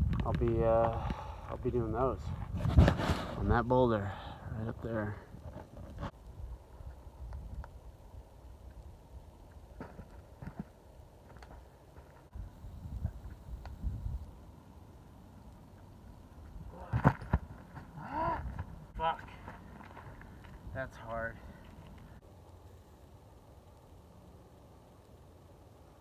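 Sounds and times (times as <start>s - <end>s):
wind rumble on microphone: 0.0s - 3.7s, 5.3s - 9.3s, 12.3s - 14.4s
person grunting: 18.0s - 18.5s.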